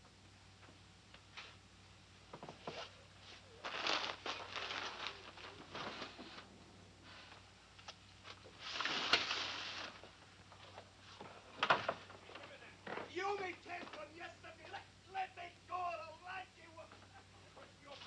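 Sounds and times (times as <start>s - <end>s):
steady low hum: 0.0s - 18.0s
clothes rustling: 2.3s - 14.9s.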